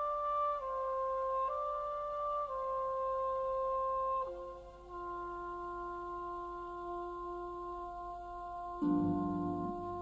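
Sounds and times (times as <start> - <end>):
soft held orchestral note: 8.7 - 10.0.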